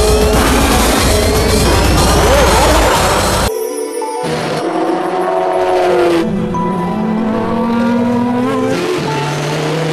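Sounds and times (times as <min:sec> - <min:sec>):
race car engine revving: 0:00.3 - 0:03.5, 0:05.5 - 0:09.9.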